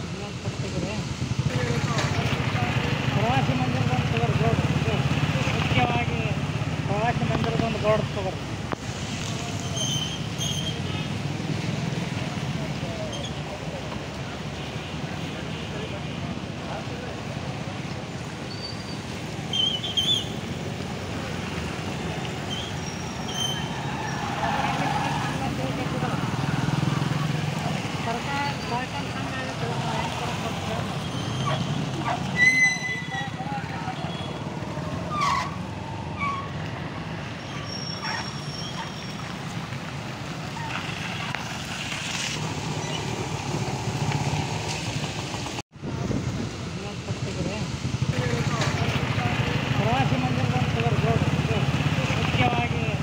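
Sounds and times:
voices: 0.0s - 45.4s, 46.6s - 53.0s
motorcycle engines passing: 0.0s - 53.0s.

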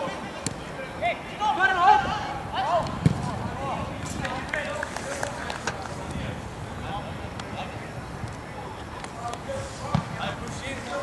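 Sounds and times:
football thudding: 2.8s - 3.4s, 9.9s - 10.3s.

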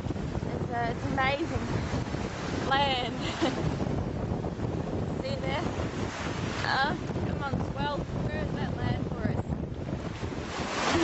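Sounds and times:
breaking sea: 0.0s - 11.0s
rush of water: 0.0s - 11.0s
wind buffeting microphone: 0.0s - 11.0s.

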